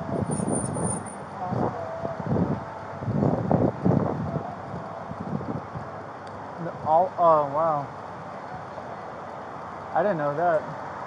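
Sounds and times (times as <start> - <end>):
wind buffeting microphone: 0.0 - 6.9
distant traffic: 0.0 - 11.0.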